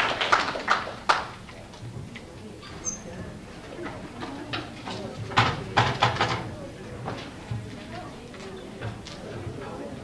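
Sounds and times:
audience applause: 0.0 - 1.4
faint murmur of voices: 0.0 - 10.0.

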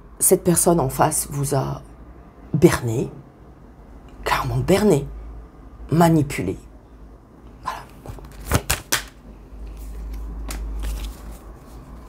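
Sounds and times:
cards shuffling: 7.9 - 12.0.

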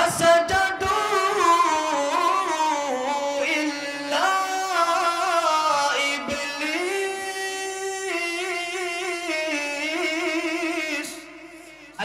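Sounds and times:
man singing long note: 0.0 - 12.0.

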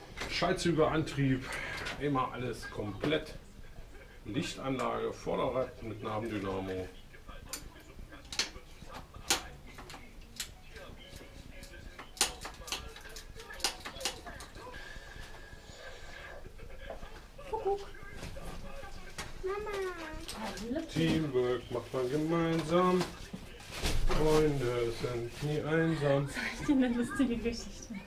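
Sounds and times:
tools clicking and knocking: 11.6 - 14.5.

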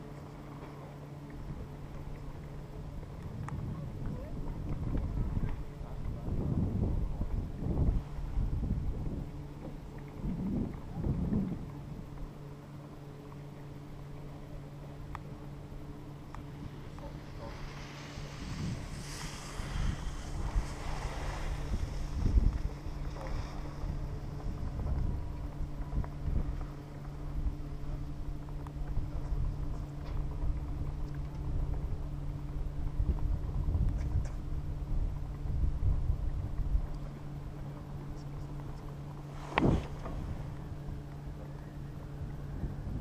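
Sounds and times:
steady low hum: 0.0 - 43.0
wind buffeting microphone: 1.4 - 12.3, 14.3 - 43.0.

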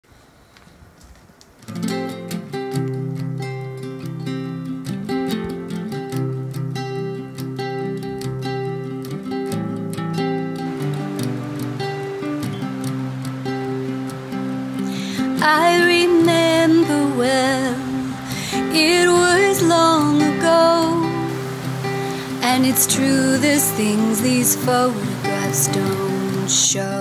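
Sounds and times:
acoustic guitar strumming chords: 1.7 - 27.0.

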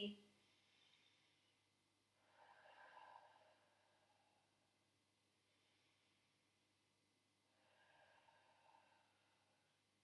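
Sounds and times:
faint exhale: 0.4 - 4.6, 7.5 - 9.9.

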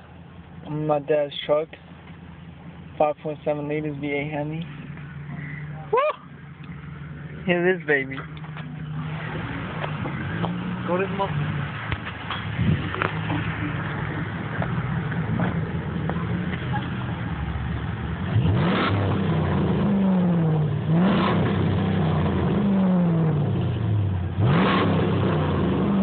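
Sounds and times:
truck engine idling and revving: 0.0 - 26.0.

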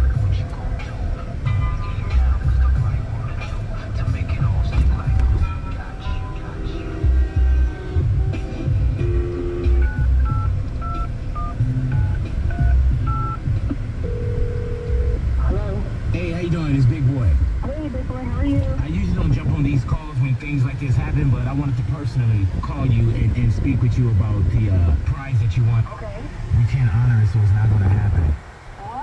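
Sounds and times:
radio music with bass beat: 0.0 - 29.0
phone ringing tone: 9.2 - 13.4, 14.0 - 15.2
touch-tone dialing beeps: 9.7 - 13.4, 14.0 - 15.2.

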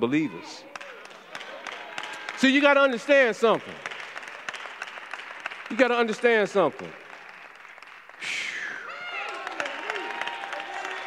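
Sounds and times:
congregation applauding: 0.7 - 11.0.

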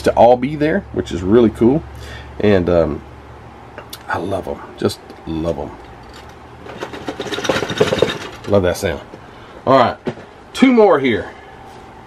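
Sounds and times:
plastic parts rattling in box: 6.1 - 8.6.

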